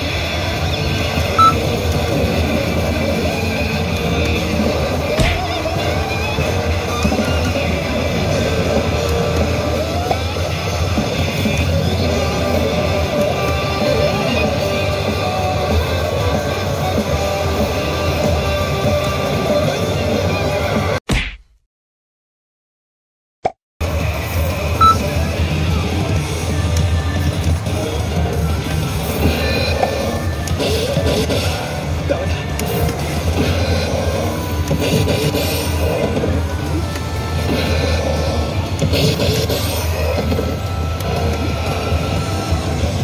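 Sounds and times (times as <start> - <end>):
rock game machine music: 0.0 - 21.0, 23.8 - 43.0.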